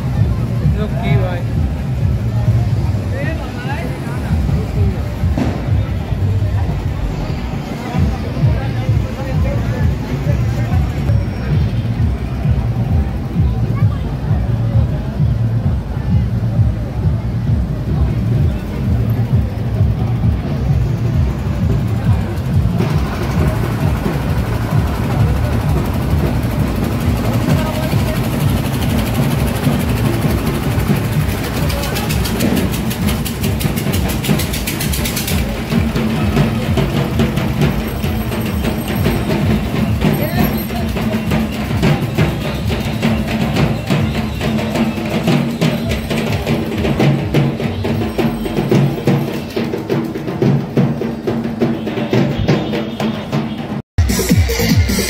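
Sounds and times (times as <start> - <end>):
fast procession drumming: 0.0 - 55.0
music: 0.0 - 55.0
street crowd voices: 0.0 - 55.0.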